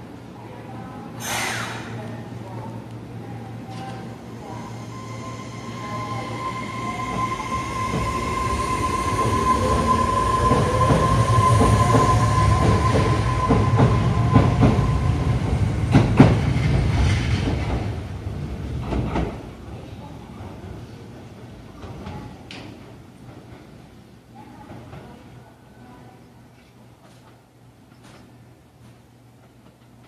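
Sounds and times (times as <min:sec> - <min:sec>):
subway train motors whining: 0:00.0 - 0:30.0.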